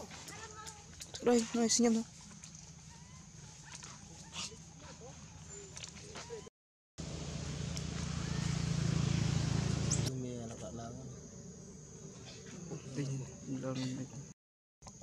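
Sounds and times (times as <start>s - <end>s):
macaque squeaks: 2.8s - 4.6s.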